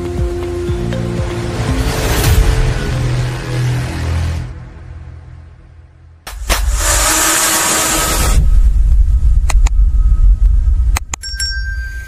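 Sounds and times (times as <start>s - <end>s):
deep rumble: 1.1s - 11.2s.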